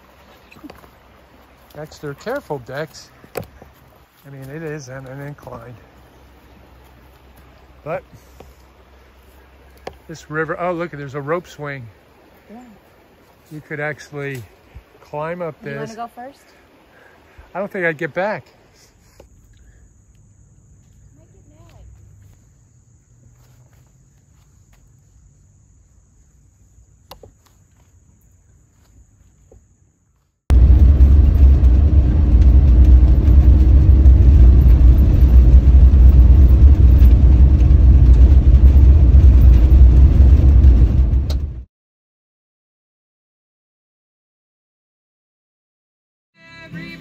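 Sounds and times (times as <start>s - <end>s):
vehicle driving on gravel road: 0.0s - 11.6s, 20.2s - 25.0s, 30.5s - 41.7s
high insect drone: 18.7s - 37.3s.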